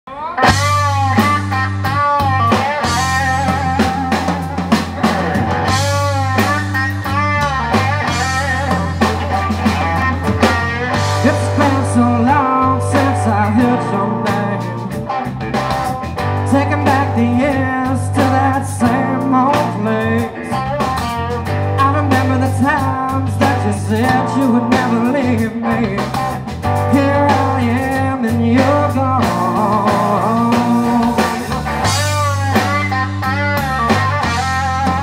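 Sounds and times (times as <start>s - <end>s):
blues-rock band playing: 0.1s - 35.0s
lead electric guitar bent notes: 0.1s - 35.0s.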